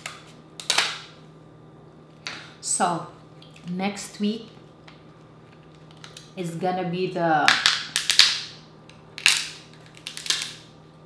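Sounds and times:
crab shell cracking: 9.2 - 10.7.

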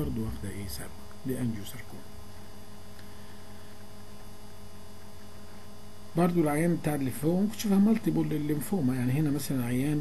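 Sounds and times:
electrical mains hum: 0.0 - 10.0
low background hiss: 0.0 - 10.0.

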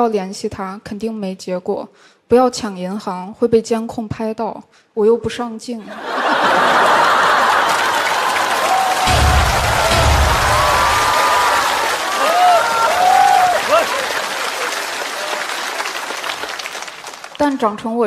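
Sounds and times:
audience laughing and applauding: 5.8 - 17.4
people whooping: 6.1 - 16.9.

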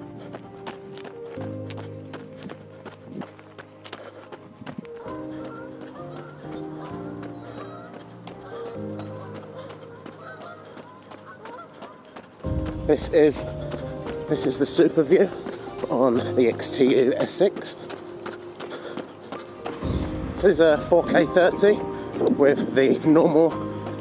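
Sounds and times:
background music chords: 0.0 - 11.2, 12.3 - 24.0
footsteps running on pavement: 0.0 - 24.0.

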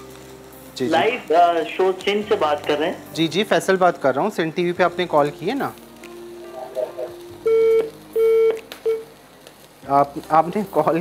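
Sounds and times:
telephone busy tone beeps: 7.5 - 9.0.

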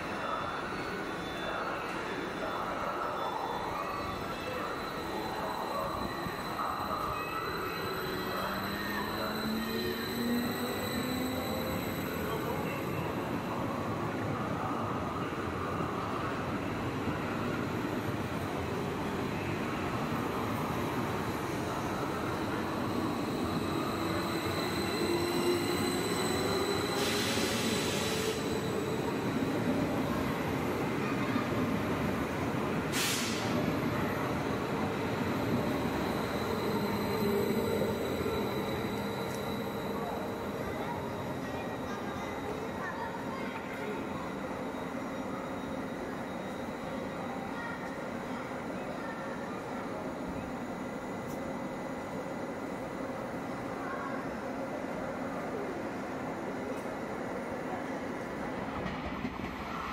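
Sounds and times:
electric train passing: 0.3 - 14.8, 15.5 - 54.0
short hisses: 33.0 - 33.6
traction motors whining: 33.2 - 42.7.

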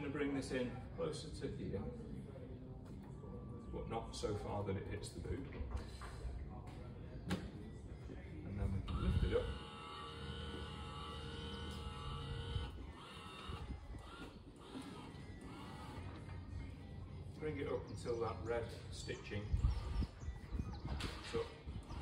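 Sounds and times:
electric motor whine: 8.9 - 16.3.

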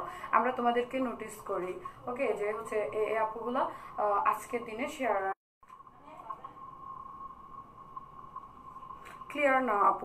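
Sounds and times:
steady electronic tone: 5.7 - 10.0.

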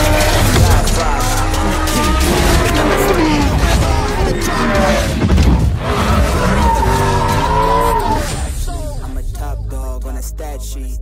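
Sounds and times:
rap music with heavy bass: 0.0 - 11.0.

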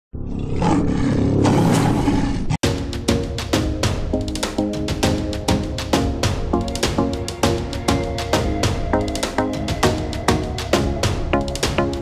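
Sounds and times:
lion roaring: 0.2 - 2.6.

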